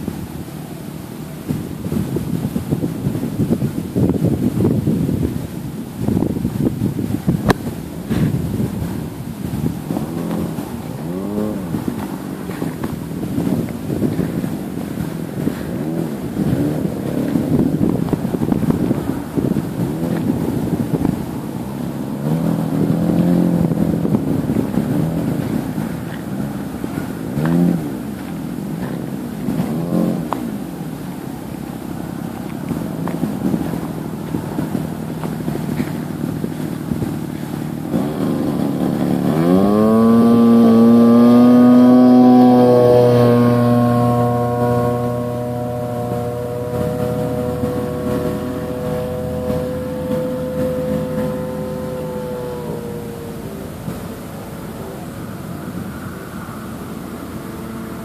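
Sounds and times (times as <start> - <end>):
model airplane engine buzzing: 0.0 - 58.0.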